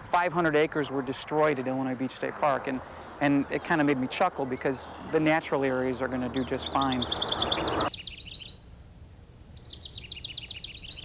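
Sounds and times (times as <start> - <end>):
songbird singing: 0.0 - 8.8, 9.5 - 11.0.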